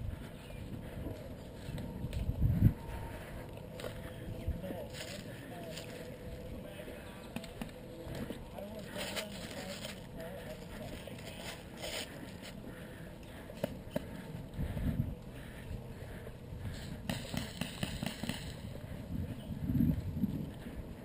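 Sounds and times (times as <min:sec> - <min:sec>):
indistinct voices: 0:00.0 - 0:17.5
footsteps through grass: 0:03.8 - 0:06.8, 0:08.1 - 0:12.6.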